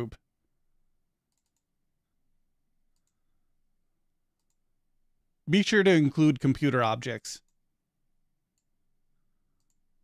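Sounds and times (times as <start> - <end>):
computer mouse clicks: 1.3 - 1.7, 2.9 - 3.2, 4.3 - 4.7, 8.5 - 8.7, 9.6 - 9.9.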